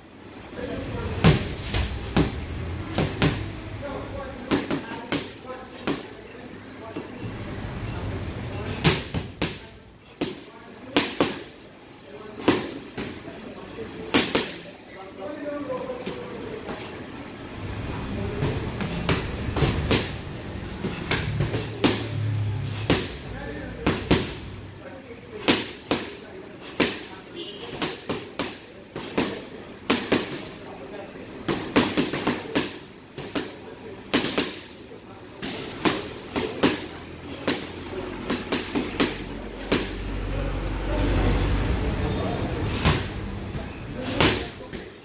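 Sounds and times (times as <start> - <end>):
punches slapping focus mitts: 35.8 - 40.0.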